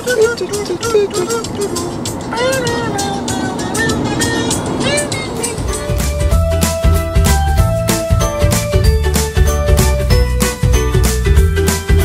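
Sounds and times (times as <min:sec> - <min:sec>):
man singing wordless tune: 0:00.0 - 0:05.9
car road and engine noise: 0:00.0 - 0:12.0
music with steady bass line: 0:05.2 - 0:12.0.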